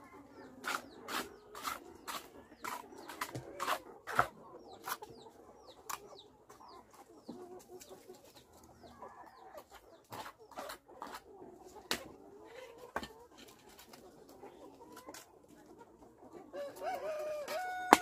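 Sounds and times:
chickens clucking: 0.0 - 18.0.

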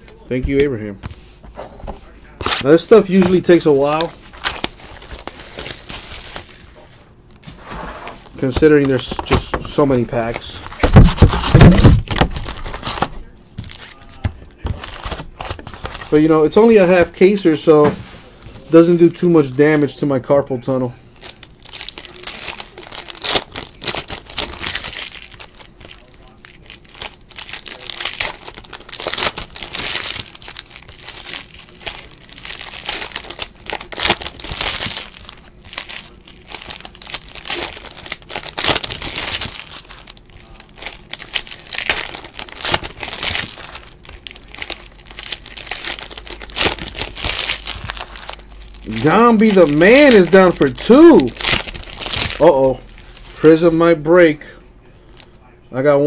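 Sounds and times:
foil wrappers torn and crinkled: 2.4 - 6.8, 8.4 - 17.4, 21.2 - 53.7.

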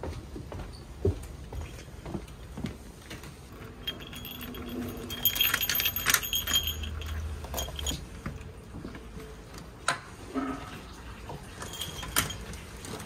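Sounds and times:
key working in lock: 3.6 - 8.1, 11.6 - 12.5
keys jangling: 3.7 - 8.1, 11.6 - 12.5.

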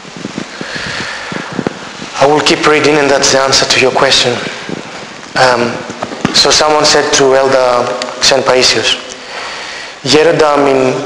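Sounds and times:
rough rustling near microphone: 0.0 - 10.6.

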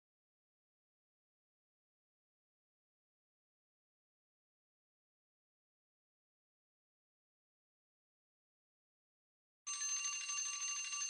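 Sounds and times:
alarm bell ringing: 9.7 - 11.0.

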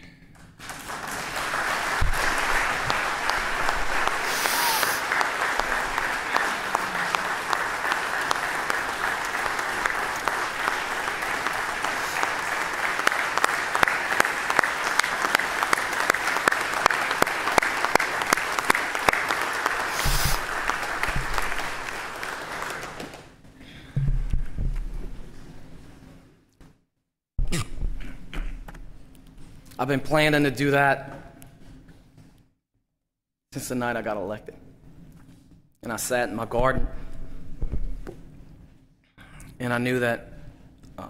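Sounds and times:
crowd applauding: 0.6 - 23.4.

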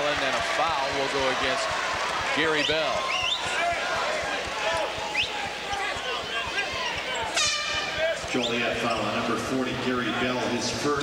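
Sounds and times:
arena crowd chatter: 0.0 - 11.0.

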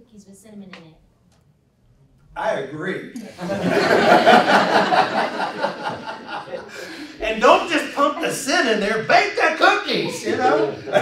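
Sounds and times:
pulsing laughter: 3.4 - 8.4, 9.9 - 11.0.

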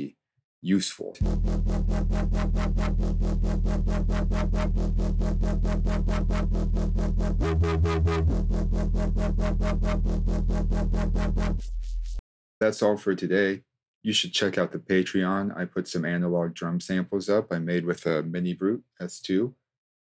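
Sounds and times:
distorted synthesizer bass: 1.2 - 12.2
fast electronic pulse: 1.2 - 12.2.

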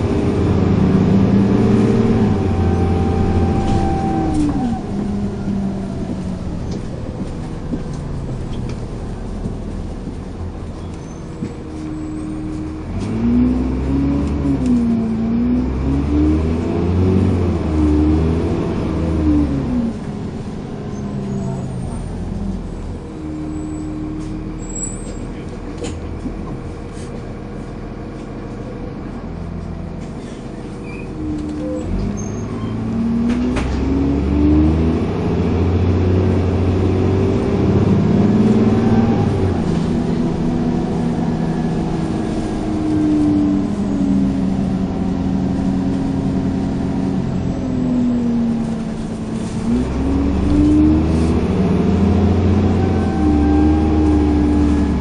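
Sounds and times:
bus engine accelerating: 0.0 - 55.0.

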